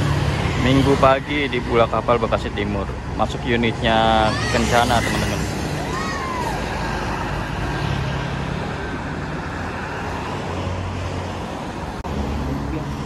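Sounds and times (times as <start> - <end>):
tyre and traffic noise: 0.0 - 13.0.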